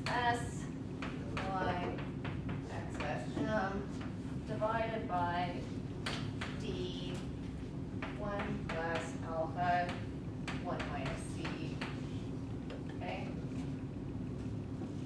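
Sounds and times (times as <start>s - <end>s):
low room hum: 0.0s - 15.0s
chalk tapping on chalkboard: 9.9s - 12.1s
woman speaking quietly: 13.0s - 13.4s.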